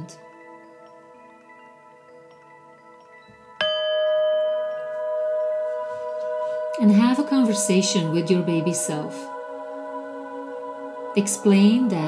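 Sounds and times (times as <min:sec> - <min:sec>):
singing bowl ringing: 0:00.0 - 0:12.0
soft chime-like music: 0:00.0 - 0:12.0.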